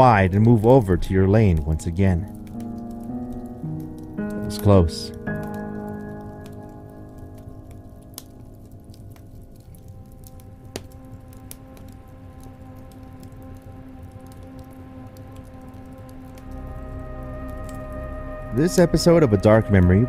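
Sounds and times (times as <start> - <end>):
log fire crackling and popping: 0.0 - 20.0
slow ambient music: 0.0 - 20.0.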